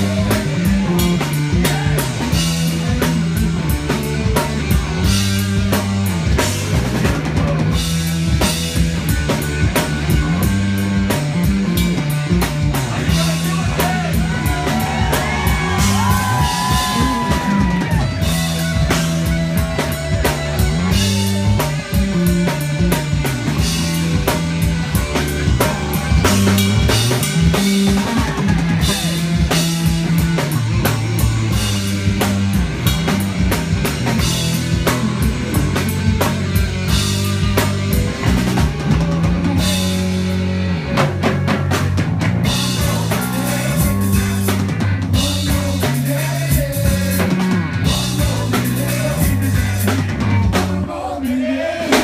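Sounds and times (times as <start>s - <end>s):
drum kit: 0.0s - 52.0s
live rock band playing: 0.0s - 52.0s.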